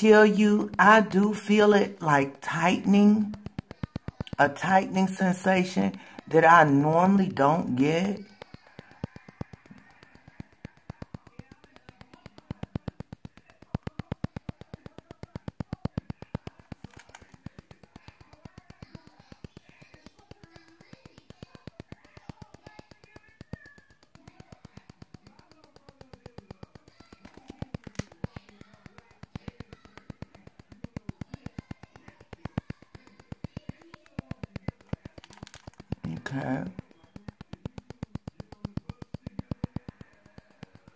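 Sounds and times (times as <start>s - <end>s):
skin scrubber rapid ticking: 0.0s - 40.9s.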